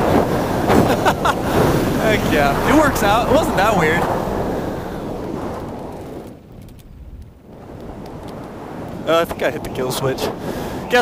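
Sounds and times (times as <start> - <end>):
low wind rumble: 0.0 - 11.0.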